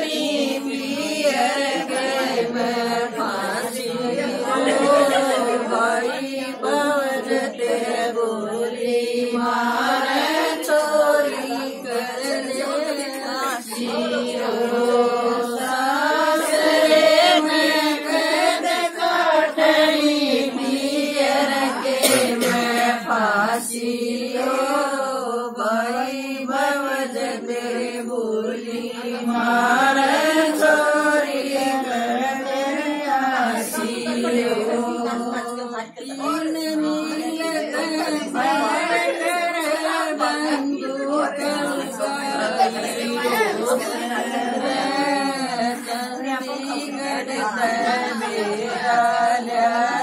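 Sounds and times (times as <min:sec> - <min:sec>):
women singing folk song: 0:00.0 - 0:50.0.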